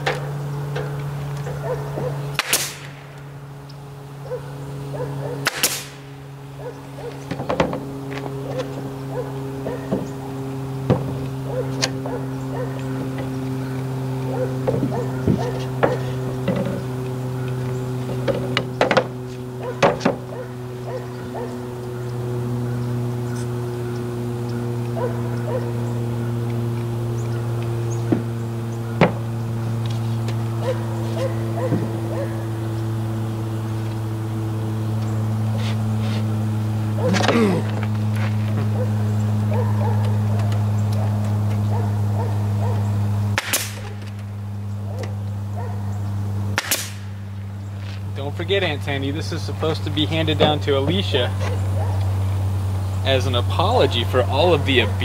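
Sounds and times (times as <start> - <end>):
low hum: 0.0 - 55.0
nail gun firing: 2.3 - 3.0, 5.4 - 6.1, 43.4 - 44.2, 46.6 - 47.1.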